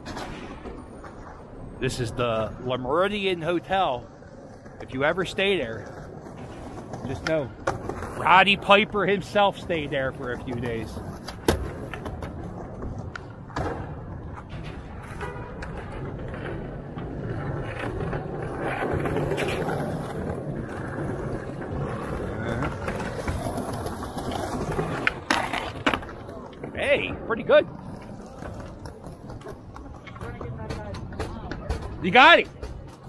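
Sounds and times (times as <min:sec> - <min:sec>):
skateboard wheels rolling on concrete: 0:00.0 - 0:33.0.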